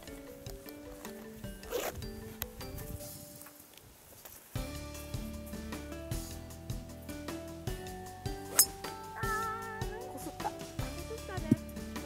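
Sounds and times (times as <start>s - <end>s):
background music: 4.6s - 12.0s
golf club striking ball: 8.4s - 9.0s.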